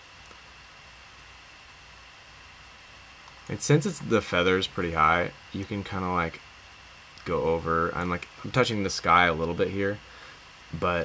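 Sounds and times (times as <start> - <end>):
faint steady hiss: 0.0 - 11.0
thin high whine: 0.0 - 11.0.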